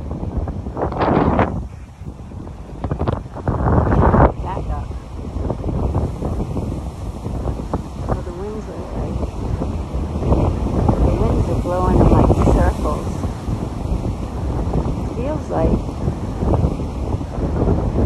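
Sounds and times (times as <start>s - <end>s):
breaking surf: 0.0s - 18.0s
gusty wind buffeting microphone: 0.0s - 18.0s.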